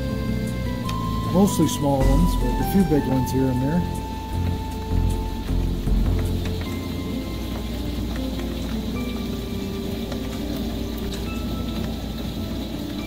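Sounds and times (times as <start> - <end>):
background music with held notes: 0.0 - 13.0
heavy rain on asphalt: 0.0 - 13.0
hailstones clicking: 0.2 - 13.0.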